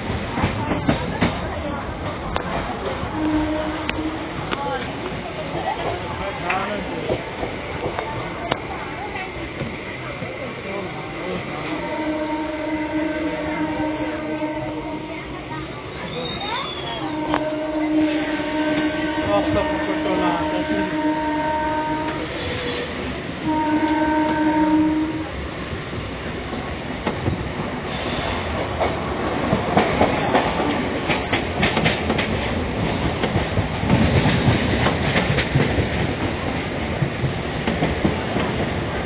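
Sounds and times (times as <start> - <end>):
train rumble: 0.0 - 39.0
women chatting: 0.4 - 3.5, 4.3 - 6.5, 7.7 - 11.0, 13.4 - 18.4.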